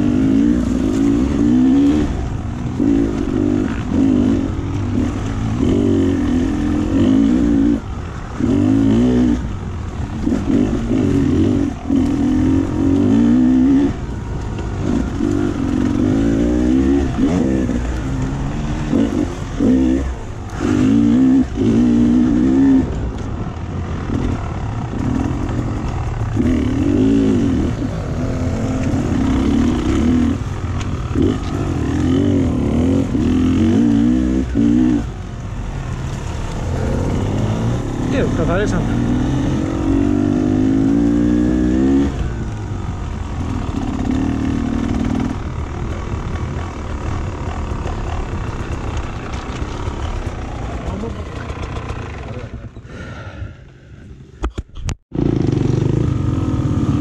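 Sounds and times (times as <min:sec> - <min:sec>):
dirt bike engine revving: 0:00.0 - 0:52.7, 0:55.1 - 0:57.0.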